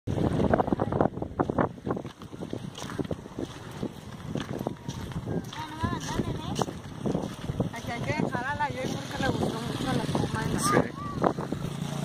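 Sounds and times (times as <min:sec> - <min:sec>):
wind buffeting microphone: 0:00.1 - 0:12.0.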